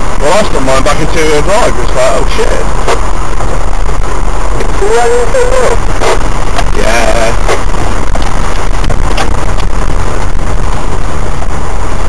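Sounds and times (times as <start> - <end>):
vehicle engine and tyres rumbling: 0.0 - 12.0
person speaking: 4.6 - 7.6.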